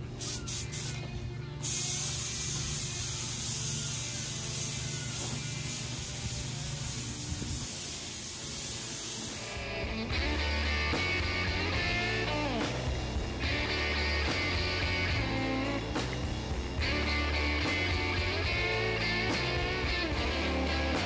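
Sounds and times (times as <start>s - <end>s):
paint spray gun hissing: 0.0s - 9.8s
rock music: 9.1s - 21.0s.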